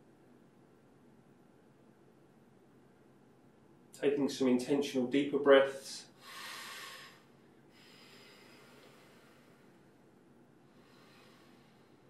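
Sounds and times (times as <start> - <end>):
man breathing deeply: 6.2 - 10.0, 10.6 - 12.0.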